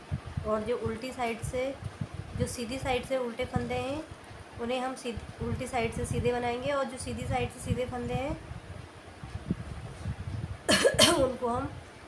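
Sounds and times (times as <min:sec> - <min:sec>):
woman coughing: 0:10.7 - 0:11.4.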